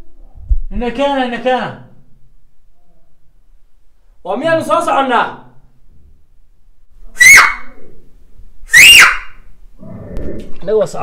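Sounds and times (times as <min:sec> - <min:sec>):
rising whistle-like calls: 0:07.1 - 0:07.8, 0:08.7 - 0:09.4.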